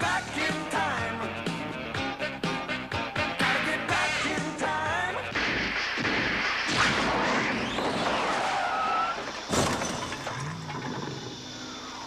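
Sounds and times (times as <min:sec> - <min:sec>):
crash with shattering: 0:05.4 - 0:10.6.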